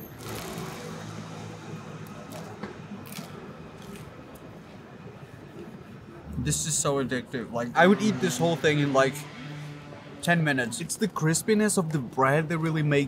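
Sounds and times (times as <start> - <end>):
street hum: 0.0 - 13.0.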